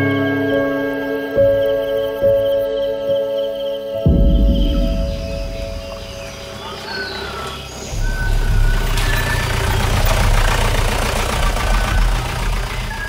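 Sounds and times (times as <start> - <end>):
low engine rumble: 4.1 - 13.0.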